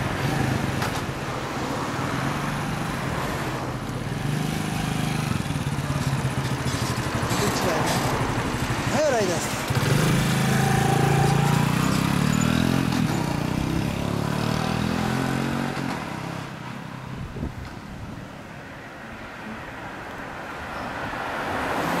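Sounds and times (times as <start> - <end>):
motorcycle revving: 0.0 - 1.6, 2.2 - 16.6.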